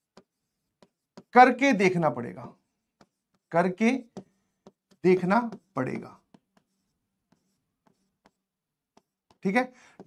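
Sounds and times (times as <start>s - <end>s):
stylus ticking on pen tablet: 0.0s - 10.0s.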